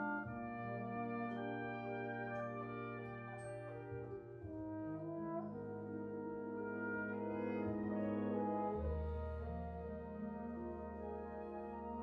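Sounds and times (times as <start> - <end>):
military wind band: 0.0 - 12.0
trombone playing held notes: 0.0 - 12.0.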